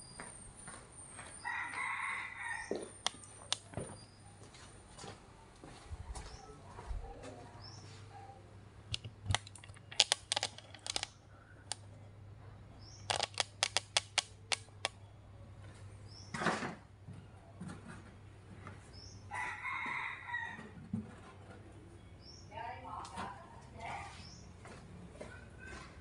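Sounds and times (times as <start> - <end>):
rooster crowing: 1.4 - 3.1, 19.3 - 20.8
sharp clicks and knocks: 8.9 - 11.1, 13.0 - 15.0.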